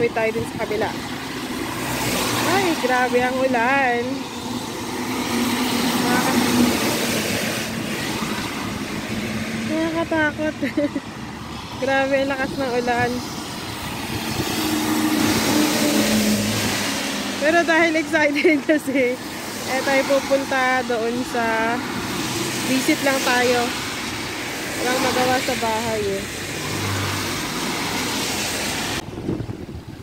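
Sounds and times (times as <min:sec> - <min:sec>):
heavy rain falling: 0:00.0 - 0:11.7, 0:12.5 - 0:29.0
lorry engine drone: 0:00.0 - 0:22.0
car tyres spraying on wet road: 0:00.0 - 0:30.0
tyre hiss on wet road: 0:26.3 - 0:29.0.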